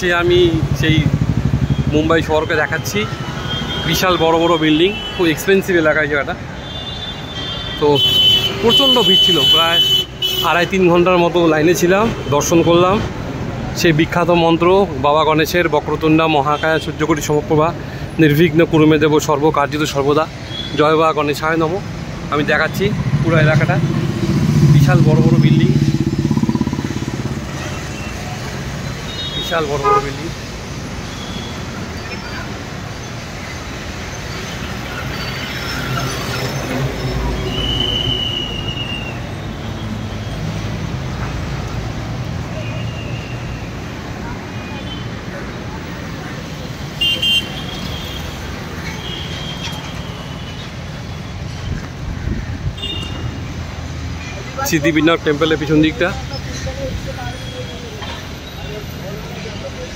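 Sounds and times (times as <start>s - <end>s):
speech: 0.0s - 1.1s, 7.8s - 13.1s, 13.8s - 23.9s, 24.7s - 25.8s, 54.3s - 59.9s
city street traffic rumble: 0.0s - 59.9s.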